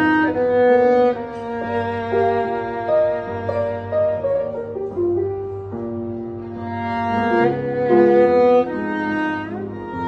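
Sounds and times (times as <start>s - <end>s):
violin playing slow melody: 0.0s - 10.0s.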